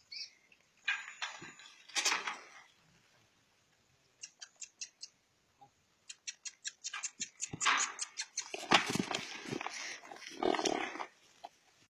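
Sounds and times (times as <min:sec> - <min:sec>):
animals rustling on dry grass: 0:07.4 - 0:11.6.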